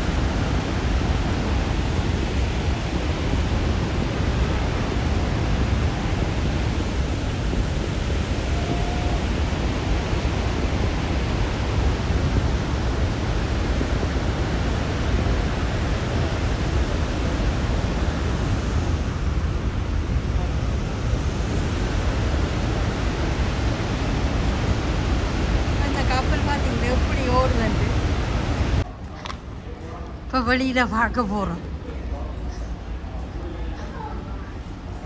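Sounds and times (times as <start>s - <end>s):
waterfall rushing: 0.0s - 28.8s.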